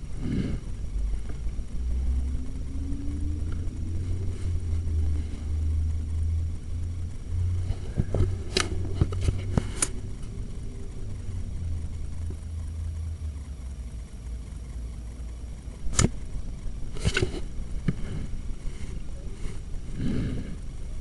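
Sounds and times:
low steady rumble: 0:00.0 - 0:21.0
sharp clicks and knocks: 0:07.9 - 0:10.3.

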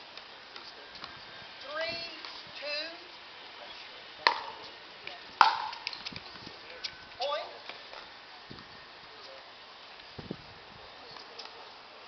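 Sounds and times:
paddles striking plastic ball: 0:05.4 - 0:05.9.

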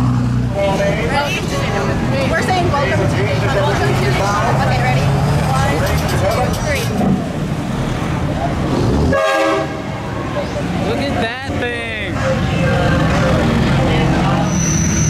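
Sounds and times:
engine low drone: 0:00.0 - 0:15.0
street traffic noise: 0:00.0 - 0:15.0
voices: 0:00.0 - 0:15.0
truck air horn blast: 0:09.0 - 0:10.0.

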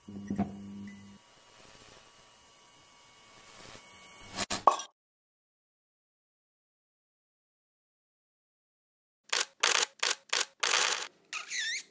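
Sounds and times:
camera shutter snaps: 0:09.3 - 0:11.1.

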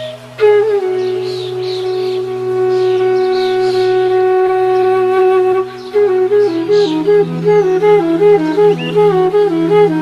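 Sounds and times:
bamboo flute long note: 0:00.0 - 0:10.0.

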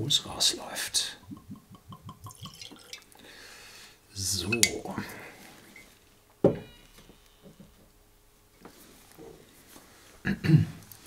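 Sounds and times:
whisky glugging from bottle: 0:01.2 - 0:03.2.

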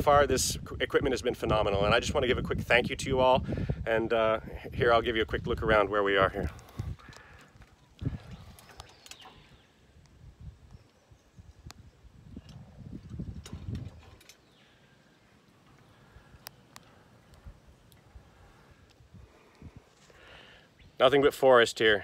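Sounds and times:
wind buffeting microphone: 0:00.0 - 0:14.6, 0:17.3 - 0:20.0
faint handling clicks: 0:15.6 - 0:18.1.

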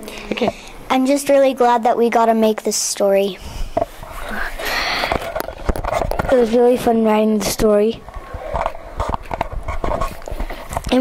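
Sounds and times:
microphone handling knocks and rubbing: 0:05.1 - 0:06.4, 0:08.1 - 0:10.9
person speaking: 0:06.2 - 0:08.6.

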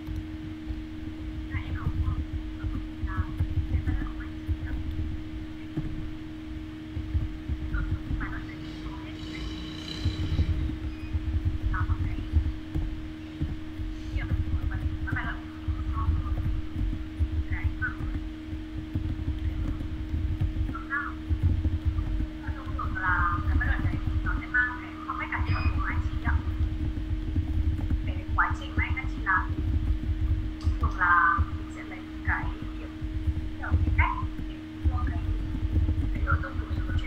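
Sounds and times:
low rumble: 0:00.0 - 0:37.0
steady hum: 0:00.0 - 0:37.0
muffled speech over video call: 0:14.1 - 0:16.5, 0:22.4 - 0:26.6, 0:28.1 - 0:29.6, 0:30.6 - 0:33.0, 0:33.6 - 0:35.4, 0:36.1 - 0:37.0.

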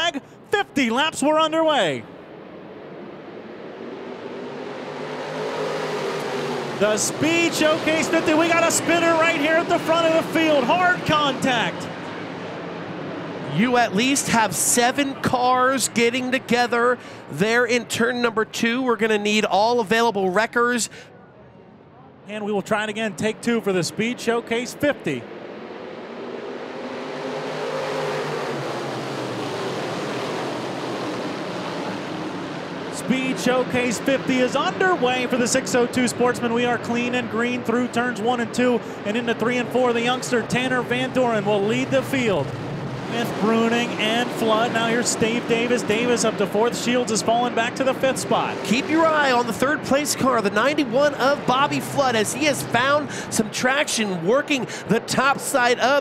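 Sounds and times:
racing car engines: 0:00.0 - 0:56.0.

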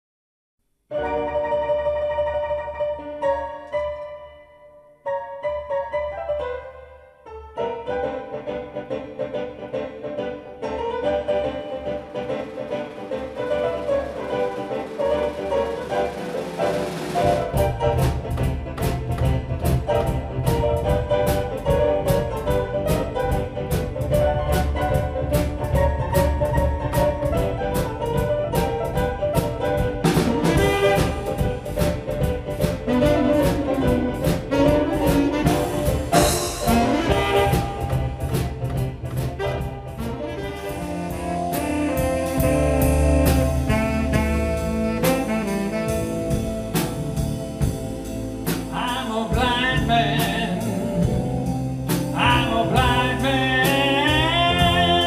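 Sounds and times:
bass: 0:06.0 - 0:55.0
keyboard orchestral chords: 0:10.4 - 0:55.0
drum kit beat: 0:11.8 - 0:55.0.

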